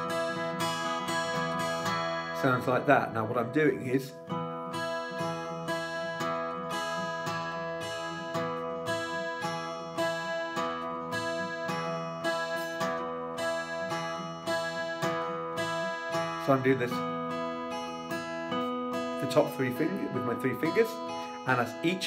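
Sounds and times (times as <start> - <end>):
fingerpicked acoustic guitar: 0.0 - 22.0.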